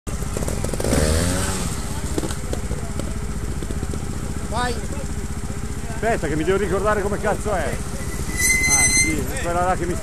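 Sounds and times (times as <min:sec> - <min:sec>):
motorcycle engine idling: 0:00.1 - 0:10.0.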